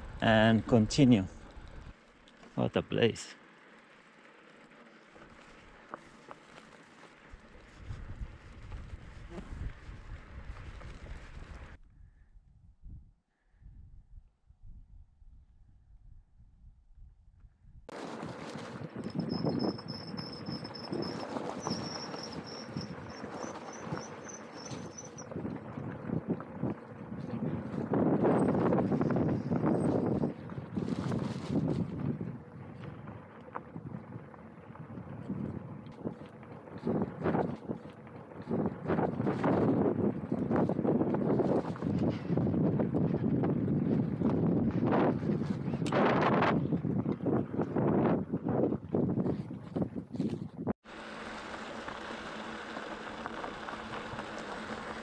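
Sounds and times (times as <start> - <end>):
bicycle and bags rattling: 0.2 - 11.8, 17.9 - 45.8, 49.0 - 55.0
tyres crunching on gravel: 3.5 - 7.9, 50.9 - 55.0
wind buffeting microphone: 7.3 - 50.8
steady hiss: 50.9 - 55.0.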